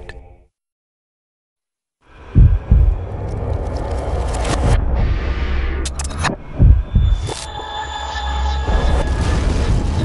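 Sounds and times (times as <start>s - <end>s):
deep heartbeat-like thump: 2.3s - 3.1s, 6.5s - 7.3s.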